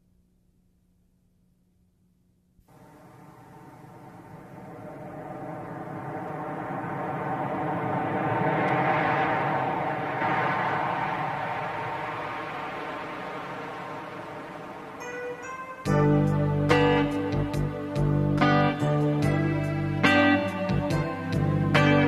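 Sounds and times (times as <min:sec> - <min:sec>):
whoosh: 0:02.7 - 0:17.6
drone of held tones: 0:02.7 - 0:22.0.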